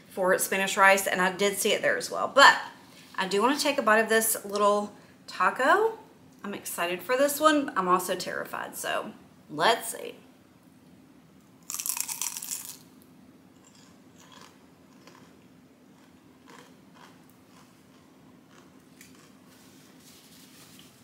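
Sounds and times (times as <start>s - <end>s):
crunchy taco bite and chewing: 11.6s - 13.0s, 13.6s - 19.7s.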